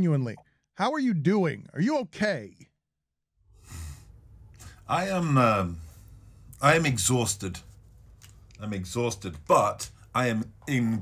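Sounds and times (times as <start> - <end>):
man speaking: 0.0 - 2.7, 4.9 - 5.9, 6.6 - 7.6, 8.6 - 11.0
faint breath: 3.5 - 4.9.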